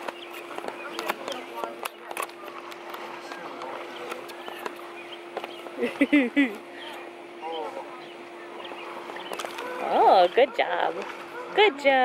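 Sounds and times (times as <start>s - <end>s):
distant voices: 0.0s - 12.0s
steady low hum: 0.0s - 12.0s.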